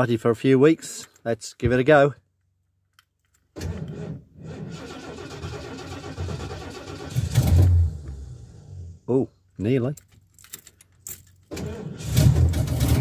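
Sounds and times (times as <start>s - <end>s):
engine cranking on starter: 3.6s - 8.9s, 11.5s - 13.0s
engine nearly catching: 4.5s - 9.0s, 11.5s - 13.0s.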